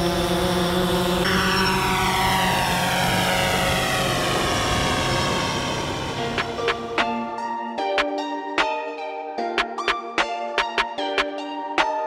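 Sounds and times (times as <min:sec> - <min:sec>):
drone propellers whining: 0:00.0 - 0:07.4.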